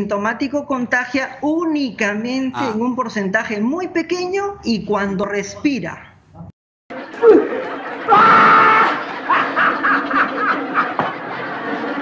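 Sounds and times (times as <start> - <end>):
person laughing: 2.6 - 2.8.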